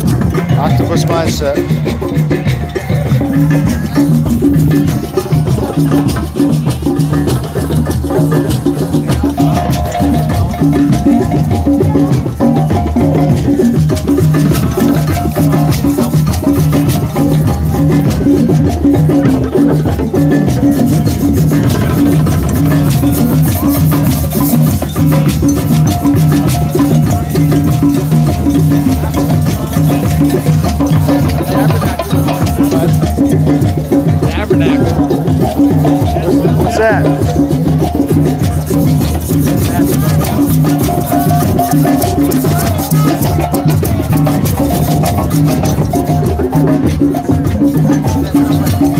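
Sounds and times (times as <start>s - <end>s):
clicking percussion: 0.0s - 48.9s
drums playing steady rhythm: 0.0s - 48.9s
shaker: 0.0s - 48.9s.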